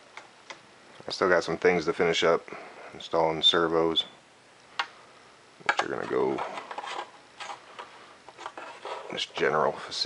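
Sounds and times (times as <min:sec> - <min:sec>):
soft rubbing on foam board: 0:06.3 - 0:09.6.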